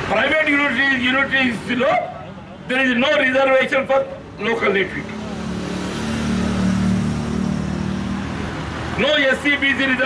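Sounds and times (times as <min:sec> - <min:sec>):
vehicle engine passing by: 0:04.6 - 0:10.0.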